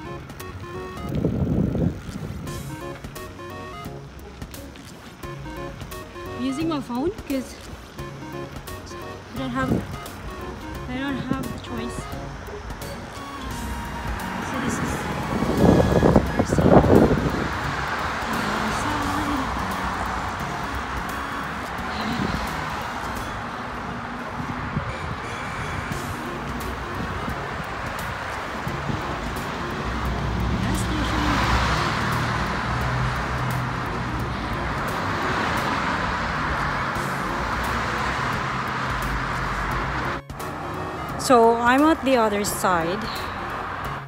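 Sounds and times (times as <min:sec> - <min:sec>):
cars passing on road: 0:00.0 - 0:44.0
louder vehicle passing: 0:00.0 - 0:44.0.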